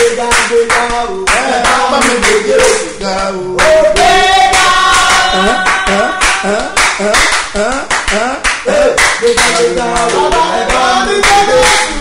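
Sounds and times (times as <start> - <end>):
hand-clapping: 0.0 - 3.0, 3.6 - 12.0
man singing: 0.0 - 4.0, 5.1 - 12.0.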